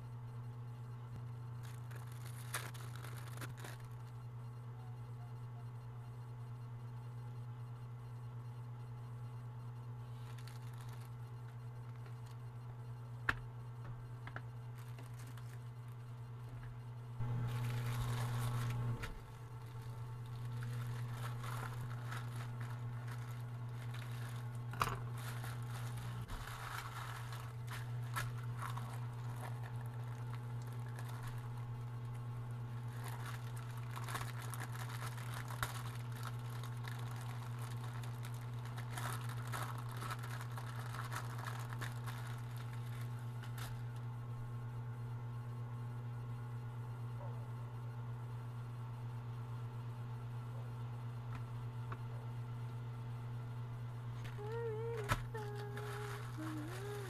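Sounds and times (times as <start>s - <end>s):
steady low hum: 0.0s - 57.0s
plastic wrapping crinkling: 1.5s - 4.2s, 10.0s - 12.4s, 14.7s - 16.1s, 17.2s - 44.0s, 54.2s - 57.0s.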